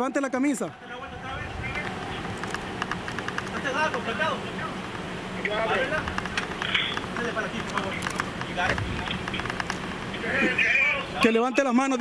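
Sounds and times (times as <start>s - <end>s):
distant men calling out: 0.0s - 6.3s.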